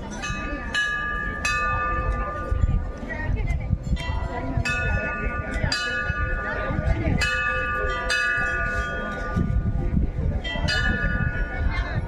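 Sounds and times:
temple bells ringing: 0.0s - 3.1s, 3.9s - 12.0s.

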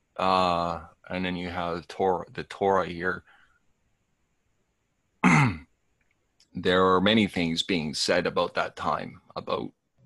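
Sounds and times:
person clearing throat: 5.2s - 5.7s.

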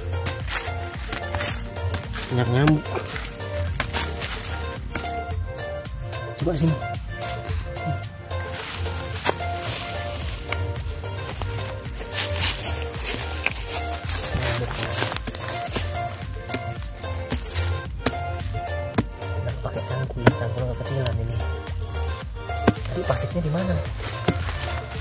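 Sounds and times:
hand tool chopping into soil: 0.0s - 5.3s, 8.8s - 19.3s, 20.0s - 21.2s, 22.5s - 25.0s
music with bass beat: 0.0s - 25.0s.

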